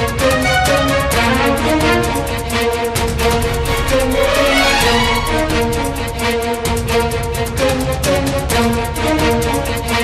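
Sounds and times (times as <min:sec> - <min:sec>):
news theme music with fast beat: 0:00.0 - 0:10.0.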